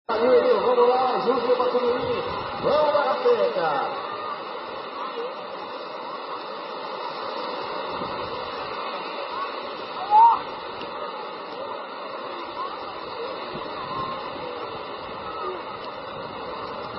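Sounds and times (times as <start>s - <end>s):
faint voices of people: 0.1s - 16.9s
small waves breaking at shore: 0.1s - 16.9s.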